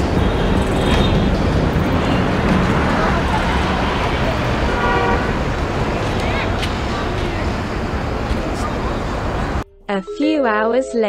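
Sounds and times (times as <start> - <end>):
road traffic noise: 0.0 - 9.6
vehicle horn tooting: 3.4 - 5.6.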